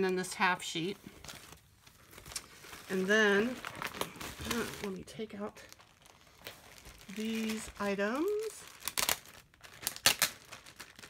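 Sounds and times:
paper rustling in plastic sleeve: 0.0s - 11.0s.

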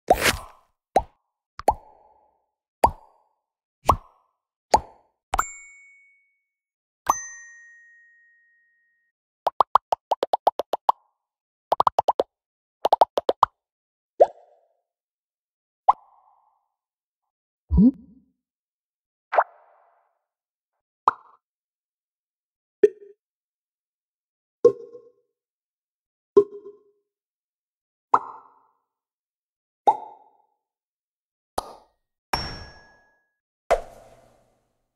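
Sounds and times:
bubble pop sound effects: 0.1s - 1.9s, 3.9s - 4.1s, 9.5s - 11.0s, 11.7s - 13.5s, 17.7s - 18.2s
bubble plops: 9.5s - 10.9s, 17.7s - 18.2s.

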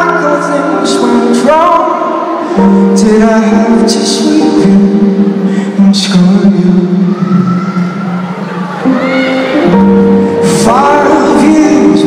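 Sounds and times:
live band sustained notes: 0.0s - 12.0s.

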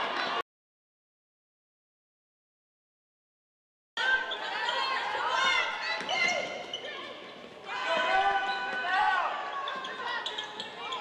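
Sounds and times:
sneakers squeaking: 4.2s - 7.6s, 8.3s - 11.0s.

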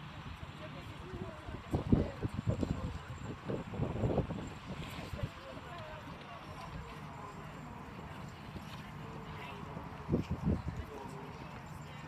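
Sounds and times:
voices talking: 0.4s - 12.0s.

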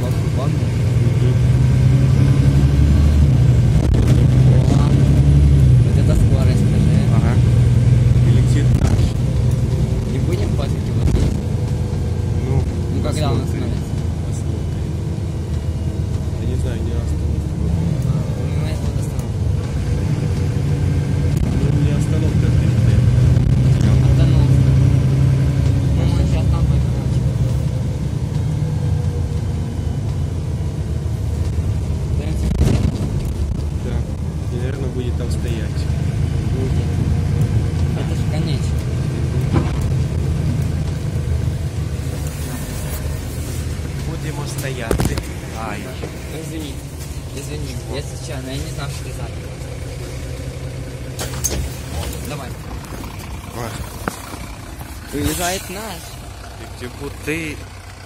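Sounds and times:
bus engine drone: 0.0s - 58.0s
road rumble: 0.0s - 58.0s.

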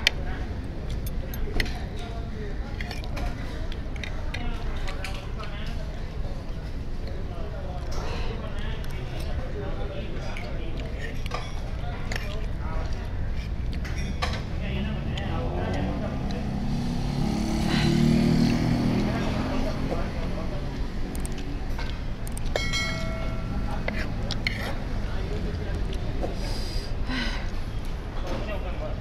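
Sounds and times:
traffic rumble: 0.0s - 29.0s
chewing: 10.2s - 14.2s, 21.1s - 22.6s, 23.7s - 26.1s
short metallic ring: 22.6s - 23.7s
cutlery scraping on a plate: 22.6s - 24.8s.

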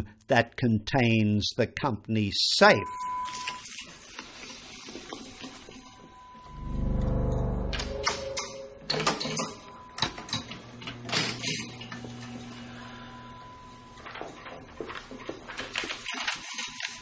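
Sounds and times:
low musical note: 6.5s - 9.3s.

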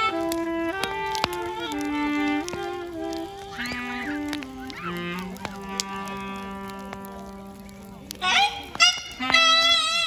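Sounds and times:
crackling bonfire pops: 0.0s - 10.0s
klezmer band with reed instruments: 0.0s - 10.0s.

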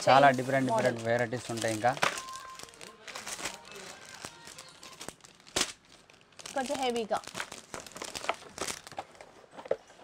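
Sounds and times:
plastic packets crinkling: 0.0s - 9.5s.

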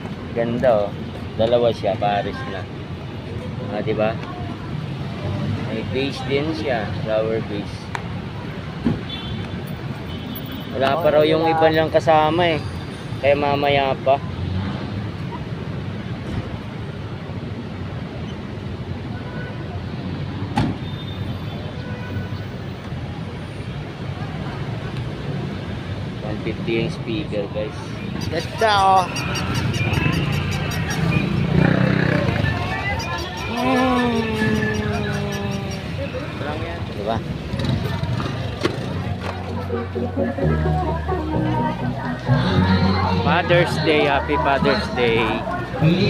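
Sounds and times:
street traffic rumble: 0.0s - 46.0s.

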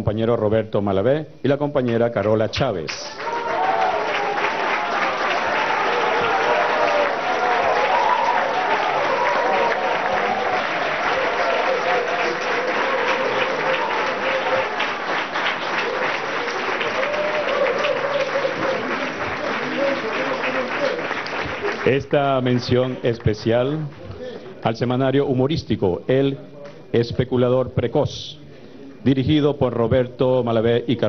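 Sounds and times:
audience applauding: 3.1s - 24.6s.

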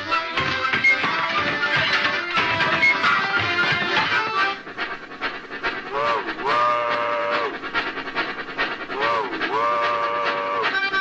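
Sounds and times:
steady rhythmic backing: 0.0s - 11.0s
harmonicas wailing train whistle: 5.8s - 7.8s, 8.8s - 11.0s.

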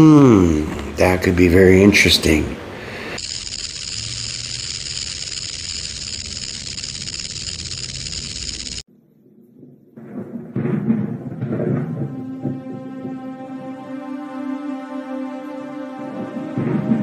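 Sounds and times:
rattlesnake rattling: 3.2s - 8.9s
dramatic music with drum hit: 10.5s - 17.0s.

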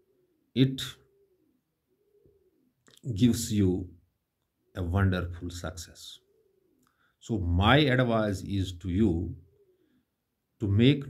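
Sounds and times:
bird cooing: 0.0s - 3.7s, 5.8s - 7.1s, 9.3s - 10.0s.

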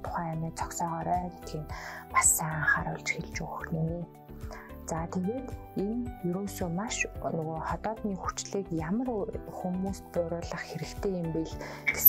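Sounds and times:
soft background music: 0.0s - 12.0s
woman speaking: 0.0s - 12.0s.

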